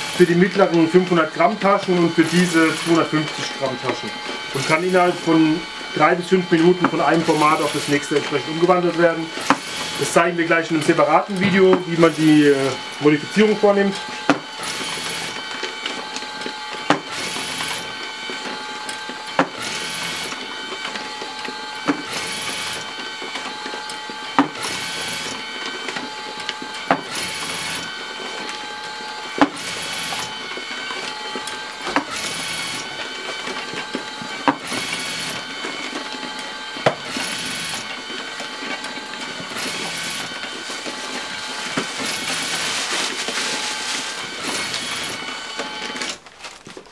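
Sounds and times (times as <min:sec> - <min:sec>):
machine motor whine: 0:00.0 - 0:46.9.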